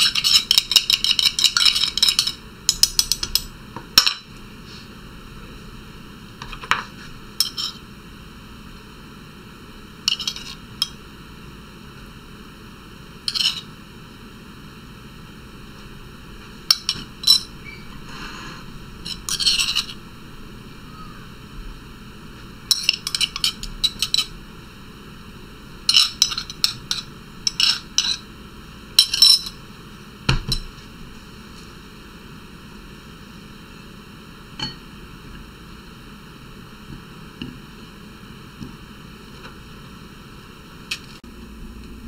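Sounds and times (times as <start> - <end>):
metal spoon clinking on glass: 29.0 - 29.6.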